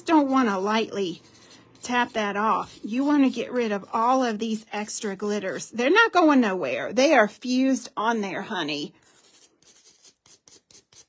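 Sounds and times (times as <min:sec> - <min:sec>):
nail brush scrubbing: 0:00.0 - 0:05.8, 0:08.7 - 0:11.0.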